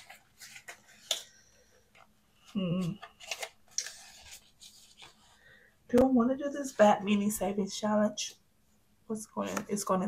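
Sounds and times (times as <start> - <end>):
plastic and paper clicks and rustles: 0.0 - 5.3.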